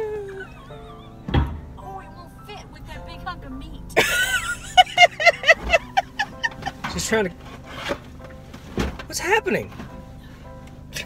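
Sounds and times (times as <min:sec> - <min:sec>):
person laughing: 0:00.0 - 0:01.3, 0:04.0 - 0:06.9
metal chair scraping and knocking: 0:05.3 - 0:10.0.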